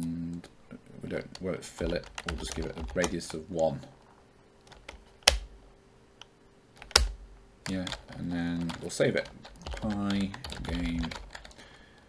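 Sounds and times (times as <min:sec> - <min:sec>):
keyboard typing: 0:01.3 - 0:03.4, 0:04.6 - 0:05.5, 0:06.8 - 0:11.7.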